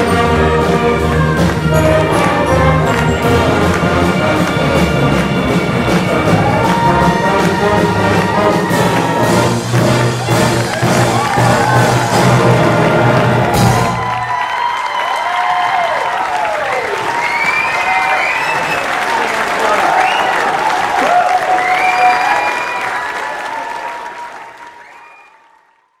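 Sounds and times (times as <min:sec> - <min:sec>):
concert band chord with brass: 0:00.0 - 0:14.3
audience applauding and cheering: 0:00.0 - 0:26.0.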